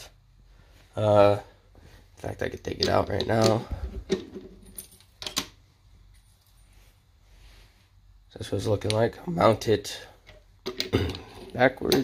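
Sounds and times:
metallic clicks and clinks: 4.6s - 5.5s.

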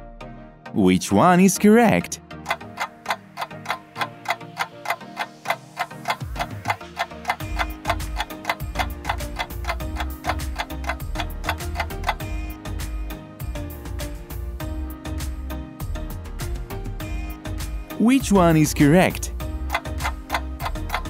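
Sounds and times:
background music: 0.0s - 21.0s
countdown timer ticking: 1.3s - 12.7s, 17.9s - 21.0s.

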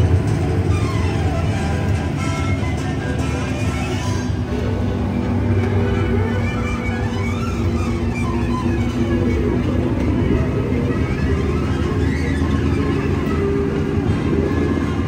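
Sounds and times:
music: 0.0s - 15.0s
small train cars rumbling on track: 0.0s - 15.0s.

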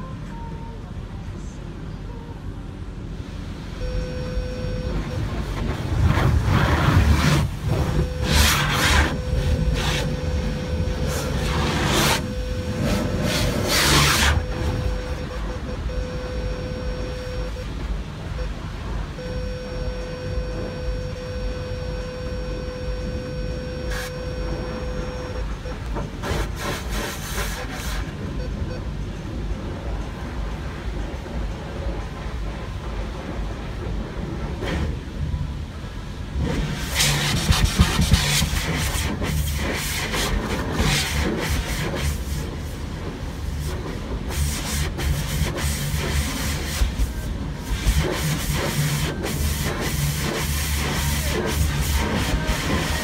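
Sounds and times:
low rumble: 0.0s - 27.0s, 28.0s - 53.0s
steady whine: 0.0s - 53.0s
pressure washer hissing: 5.9s - 15.2s, 26.1s - 28.1s, 36.6s - 53.0s.

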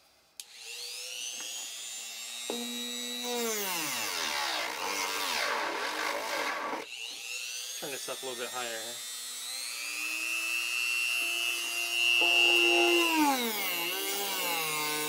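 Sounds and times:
rotary tool whining: 0.4s - 15.0s
sanding drum grinding wood: 12.2s - 15.0s.

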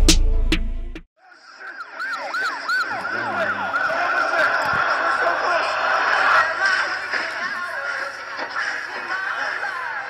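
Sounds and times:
electronic sirens yelping: 1.2s - 10.0s.

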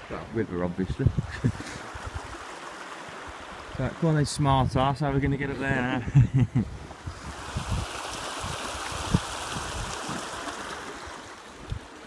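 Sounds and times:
stream running: 0.0s - 12.0s.

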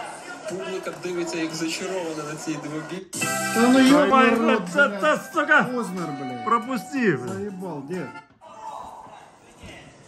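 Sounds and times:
music from small speaker: 3.1s - 8.3s.

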